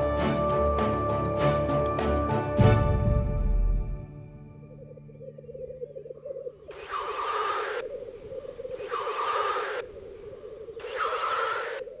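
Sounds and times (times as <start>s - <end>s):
low bubbling bird song: 4.6s - 12.0s
loud hissing bird call: 6.7s - 12.0s.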